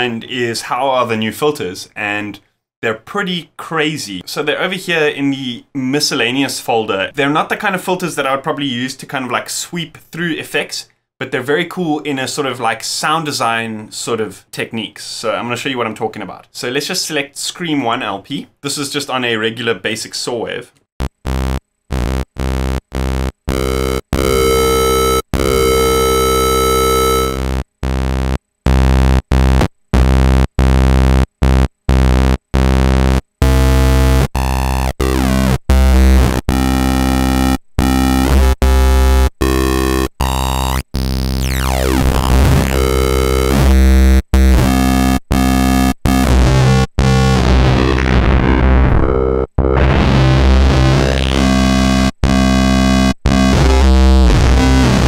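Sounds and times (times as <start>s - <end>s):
synth saw wave notes: 21.0s - 55.0s.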